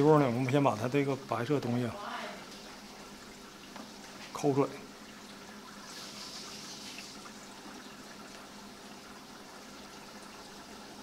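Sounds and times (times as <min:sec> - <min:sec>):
trickle of running water: 0:00.0 - 0:11.0.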